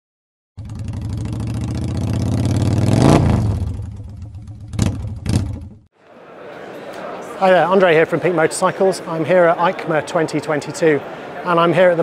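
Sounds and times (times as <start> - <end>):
motorcycle engine revving: 0.6 - 5.9.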